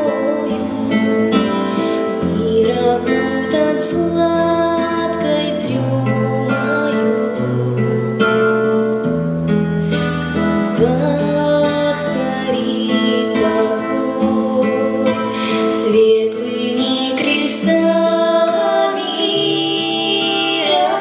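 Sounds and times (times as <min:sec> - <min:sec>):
girl singing into microphone: 0:00.0 - 0:08.8, 0:10.6 - 0:21.0
plucked string accompaniment: 0:00.0 - 0:21.0.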